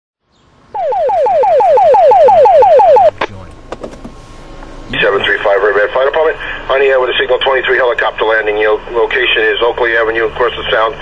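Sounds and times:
electronic falling alert tone: 0.8 - 3.2.

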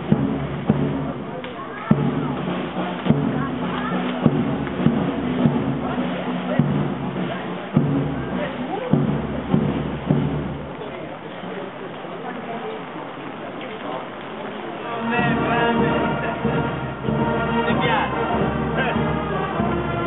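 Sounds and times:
bass drum strokes: 0.0 - 11.1, 15.0 - 20.0
marching band playing: 0.0 - 12.3, 14.6 - 20.0
crowd chatter: 0.0 - 20.0.

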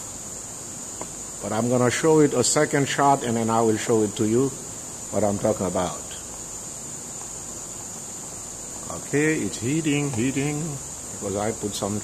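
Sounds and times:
machine hum and hiss: 0.0 - 12.0.

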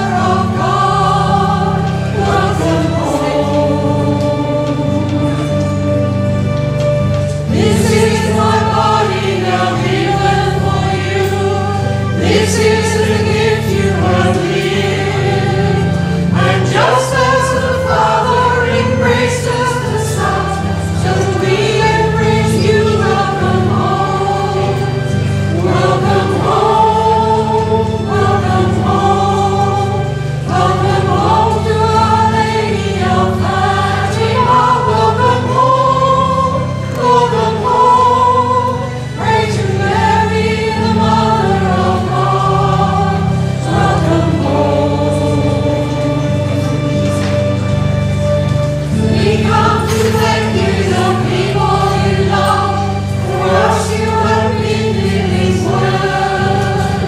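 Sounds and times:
choir singing a hymn: 0.0 - 57.0
low sustained instrumental accompaniment: 0.0 - 57.0.

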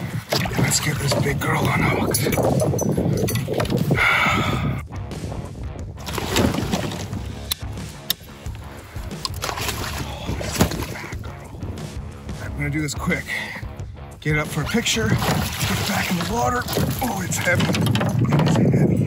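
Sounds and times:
water sloshing and splashing: 0.0 - 4.2, 6.0 - 12.5, 13.2 - 19.0.

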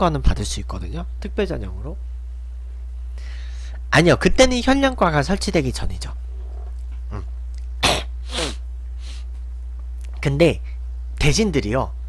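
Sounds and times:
man coughing: 7.1 - 8.6.

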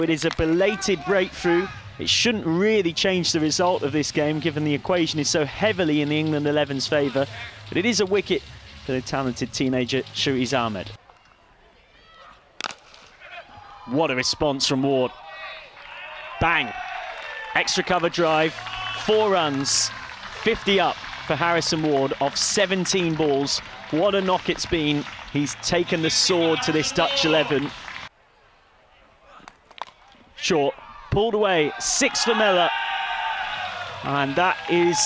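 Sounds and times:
faint open-air ambience: 0.0 - 35.0.

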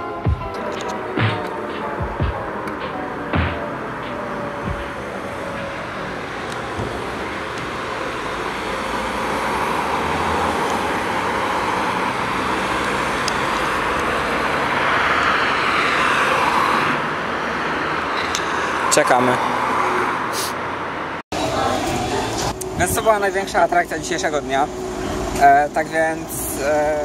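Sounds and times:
passing cars: 0.0 - 27.0.

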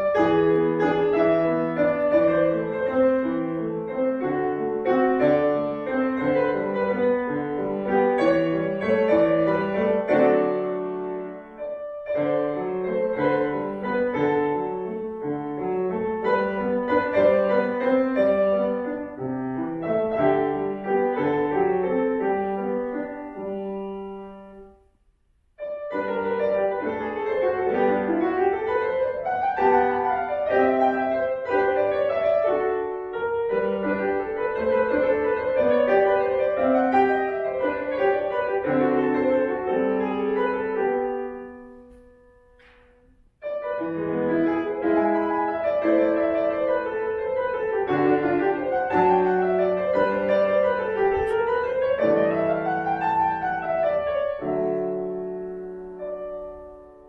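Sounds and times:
solo piano classical piece: 0.0 - 57.0.

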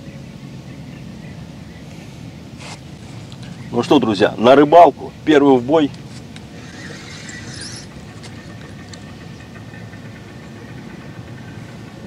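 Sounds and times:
low background rumble: 0.0 - 12.0
fishing line hissing off reel: 6.5 - 8.4.

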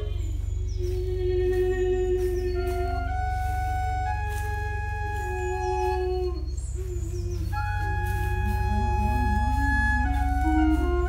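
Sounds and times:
pipe organ held tones: 0.0 - 11.0
steady low hum: 0.0 - 11.0.

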